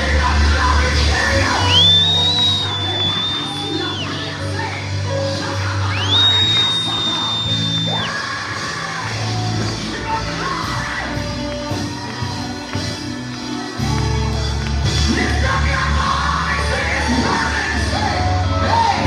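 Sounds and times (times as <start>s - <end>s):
gospel band playing: 0.0s - 19.0s.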